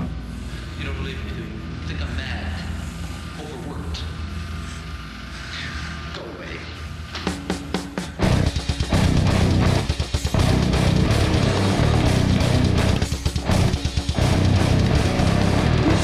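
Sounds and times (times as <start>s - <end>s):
metal band playing: 7.3s - 16.0s.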